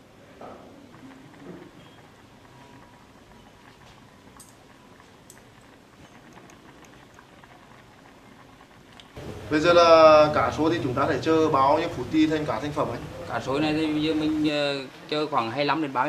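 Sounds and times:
stew bubbling in a pot: 0.0s - 16.0s.

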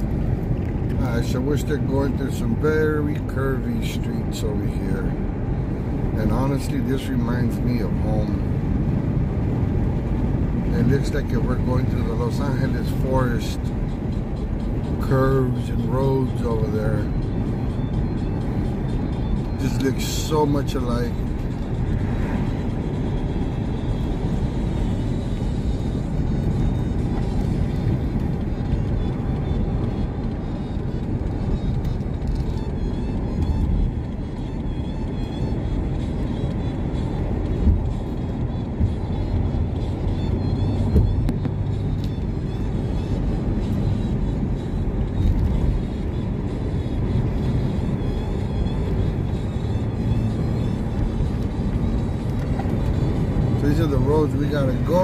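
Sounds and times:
road and wind noise in car: 0.0s - 55.0s.

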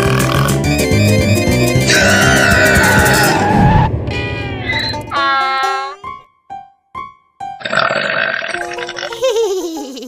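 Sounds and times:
loud comic burp: 0.0s - 0.6s, 7.6s - 9.2s
plucked cartoon music: 0.0s - 10.0s.

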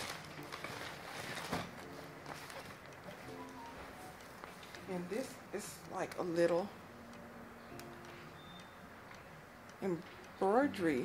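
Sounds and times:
wicker basket handling: 0.0s - 3.3s
paper rustling: 0.0s - 3.4s
soft background music: 0.0s - 11.0s.

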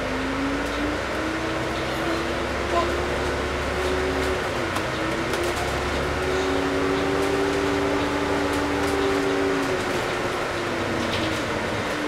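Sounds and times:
bus engine rumble: 0.0s - 12.0s
bus whine: 0.0s - 12.0s.

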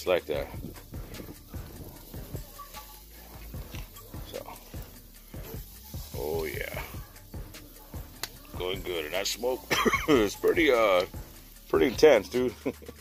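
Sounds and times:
wood fire crackling: 0.0s - 13.0s
tongs clicking on metal grate: 8.1s - 8.6s.

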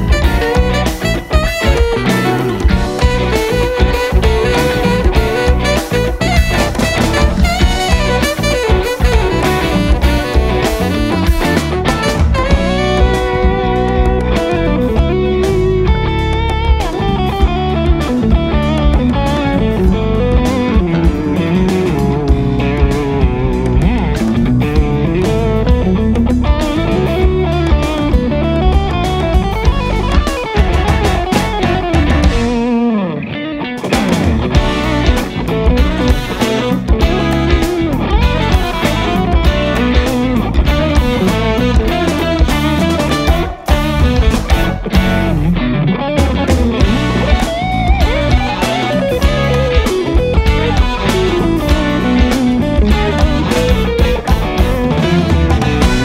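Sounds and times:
backing track with drums: 0.0s - 56.0s
lead electric guitar melody: 0.0s - 56.0s.

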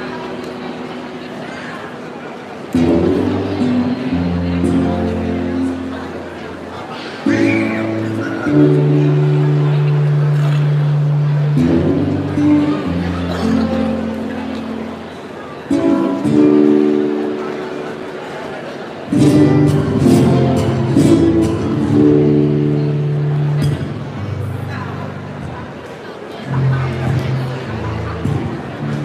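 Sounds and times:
low background murmur: 0.0s - 29.0s
acoustic guitar strumming chords: 2.6s - 25.8s, 26.4s - 29.0s.

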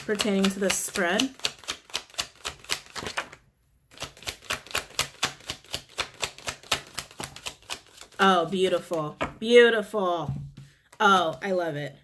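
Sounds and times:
cards being shuffled: 0.0s - 9.4s.

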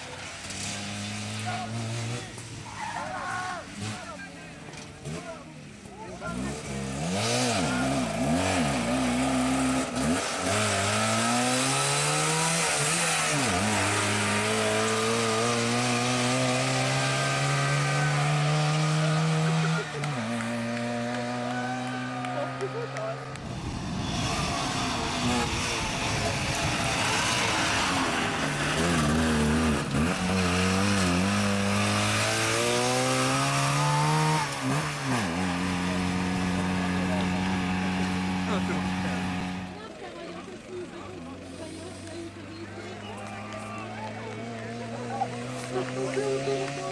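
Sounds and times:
rally car engine revving: 0.0s - 46.9s
rushing noise: 23.4s - 30.9s.

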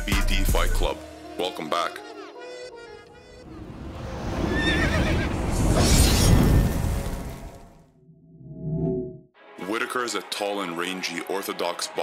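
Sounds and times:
horse whinnying: 4.4s - 5.5s.

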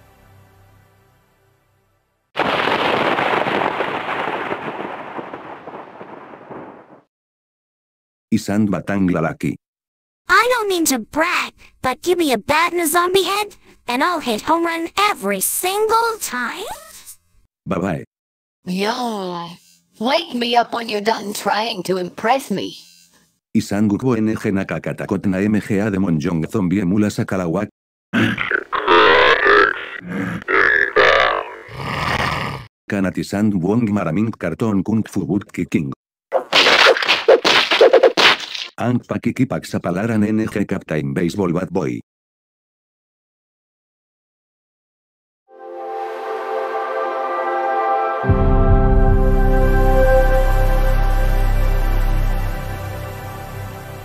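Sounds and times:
crackling thunderclap crash: 2.4s - 7.1s
guttural growls and groans: 28.2s - 32.7s.

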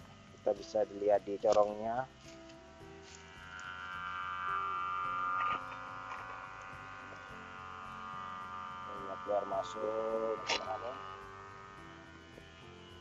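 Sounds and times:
steady buzzing hum: 0.0s - 13.0s.

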